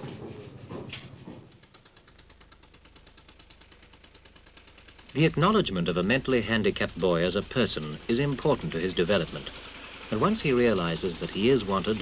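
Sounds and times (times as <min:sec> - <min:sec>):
fast even ticking: 0:01.5 - 0:12.0.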